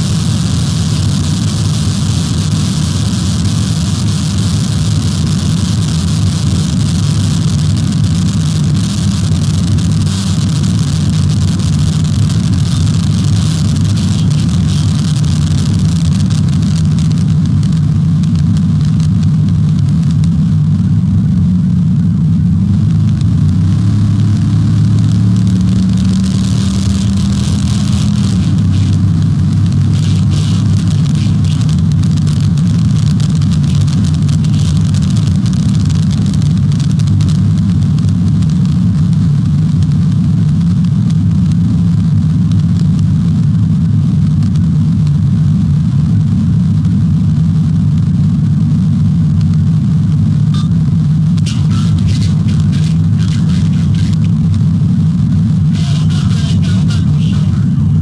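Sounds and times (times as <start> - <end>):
car engine at speed: 0.0 - 58.0
road and wind noise: 0.0 - 58.0.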